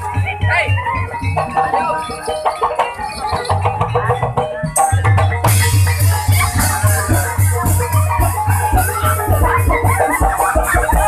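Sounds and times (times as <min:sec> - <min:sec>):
gamelan pitched percussion melody: 0:00.0 - 0:11.0
pulsing low drum beat: 0:00.0 - 0:11.0.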